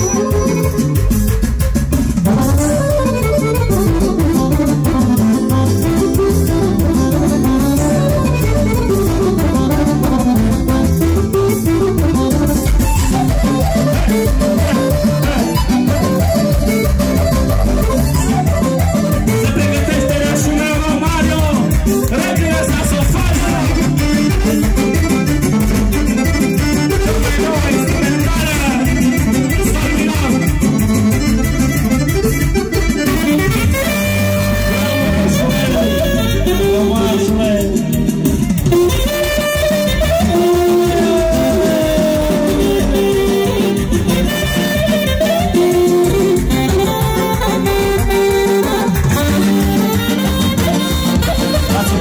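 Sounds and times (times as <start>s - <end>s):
live instrumental band music: 0.0s - 52.0s
pitch-bending lead melody: 0.0s - 52.0s.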